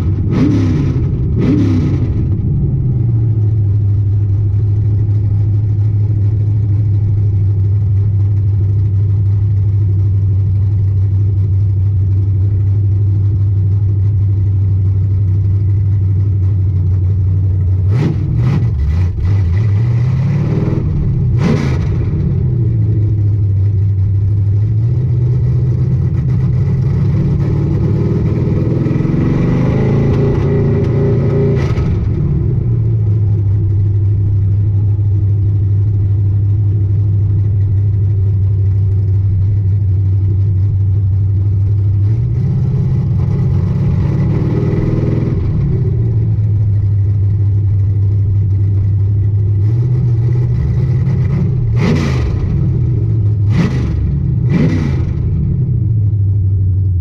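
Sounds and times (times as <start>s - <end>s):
car engine revving inside cabin: 0.0s - 57.0s.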